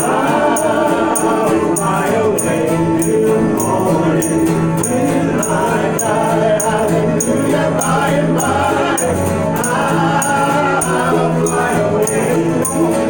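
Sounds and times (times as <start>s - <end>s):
banjo: 0.0s - 13.0s
mandolin: 0.0s - 13.0s
strummed acoustic guitar: 0.0s - 13.0s
upright bass: 0.0s - 13.0s.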